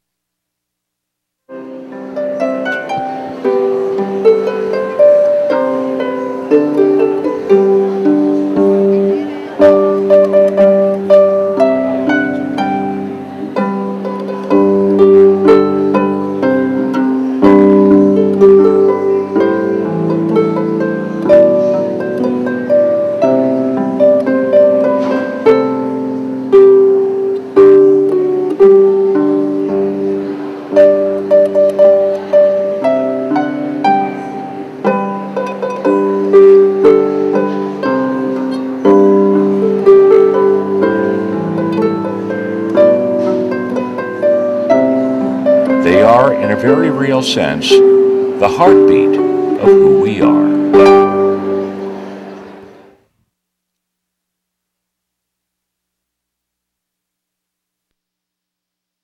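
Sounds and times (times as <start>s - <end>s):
strummed string instrument chord: 1.5s - 52.9s
harp playing slow melody: 1.5s - 53.0s.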